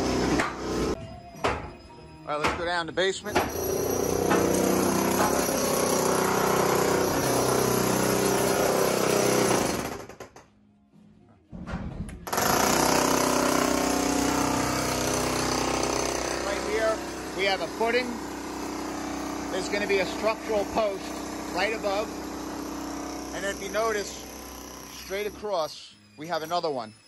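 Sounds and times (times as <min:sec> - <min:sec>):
demolition hammer chiselling concrete: 0:03.3 - 0:10.4, 0:12.3 - 0:25.5.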